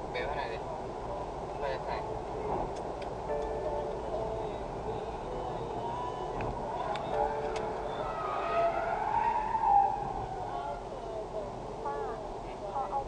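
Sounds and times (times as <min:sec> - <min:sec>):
road and engine noise: 0:00.0 - 0:13.0.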